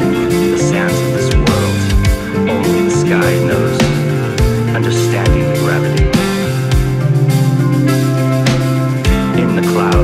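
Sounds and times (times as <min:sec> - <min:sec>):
metal band playing: 0:00.0 - 0:10.0.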